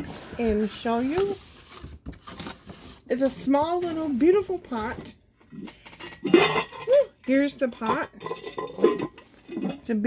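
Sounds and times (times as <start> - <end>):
pot lid clinking and clattering: 5.7 - 9.9.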